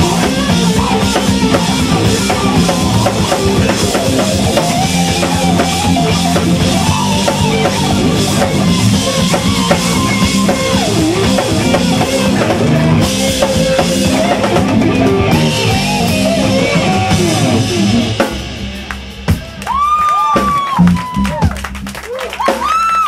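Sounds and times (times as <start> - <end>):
distorted electric guitar solo: 0.0 - 18.2
bass guitar: 0.0 - 23.0
drum kit: 0.0 - 23.0.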